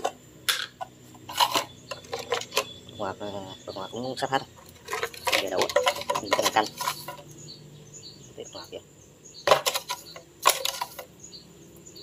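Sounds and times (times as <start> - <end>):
metal spoon scraping plastic jar: 0.0 - 2.8, 4.6 - 7.4, 9.5 - 11.2.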